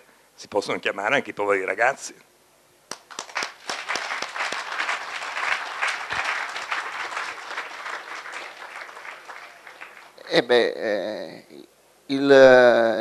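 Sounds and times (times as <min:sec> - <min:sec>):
audience applauding: 0:02.9 - 0:10.4.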